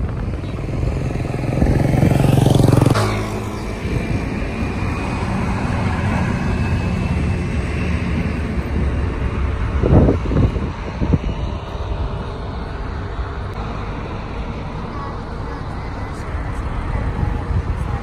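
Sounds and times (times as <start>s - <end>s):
road and wind noise: 0.0s - 18.0s
vehicle engine accelerating: 0.0s - 18.0s.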